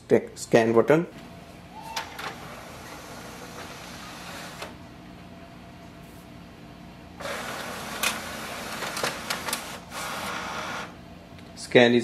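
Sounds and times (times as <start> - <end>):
scanner motor whirring: 1.8 - 4.8, 7.2 - 11.0.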